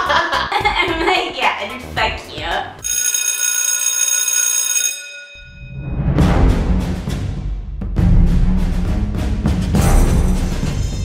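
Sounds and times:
drum-heavy music: 0:00.0 - 0:02.9, 0:06.2 - 0:11.0
electric school bell ringing: 0:02.8 - 0:05.8.

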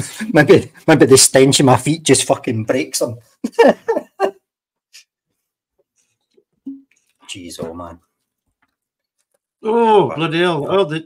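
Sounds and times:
faint small noises: 0:04.8 - 0:10.7.

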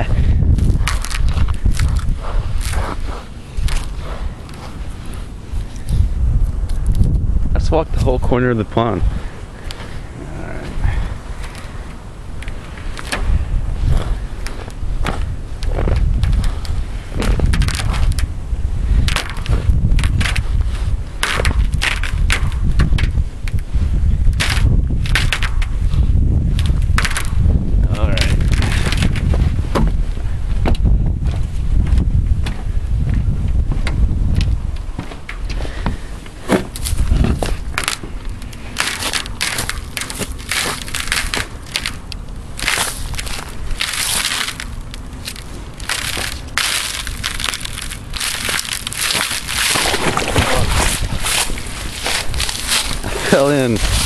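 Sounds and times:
footsteps crunching on ice: 0:00.0 - 0:06.0, 0:34.2 - 0:54.0
footsteps through dry grass: 0:00.0 - 0:07.4, 0:23.6 - 0:54.0.

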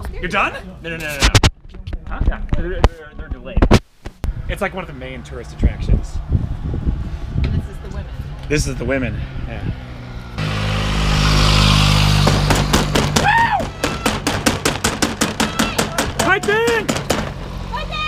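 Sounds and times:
rushing noise with low hum: 0:03.6 - 0:13.1
spectators shouting: 0:13.1 - 0:14.6, 0:15.2 - 0:17.0.

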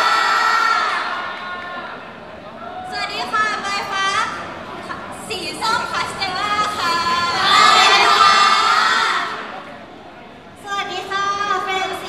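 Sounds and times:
high voices cheering: 0:00.0 - 0:09.6.

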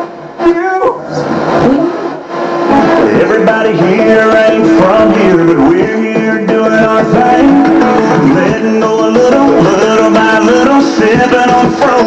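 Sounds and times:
warbling radio tuning tones: 0:00.0 - 0:10.8
radio music: 0:00.0 - 0:12.0.

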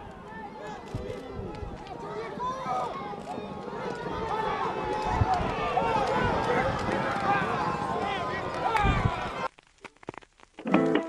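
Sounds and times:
crowd shouting: 0:00.0 - 0:09.5
horses galloping: 0:00.0 - 0:11.0.

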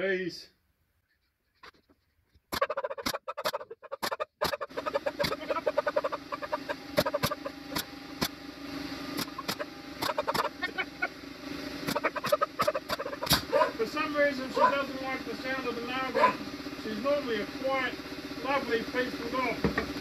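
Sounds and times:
nail gun firing into plywood: 0:07.0 - 0:08.4, 0:09.2 - 0:10.4, 0:11.9 - 0:13.5
dog yelping and whining: 0:11.9 - 0:13.8, 0:14.6 - 0:14.8, 0:16.1 - 0:16.4.

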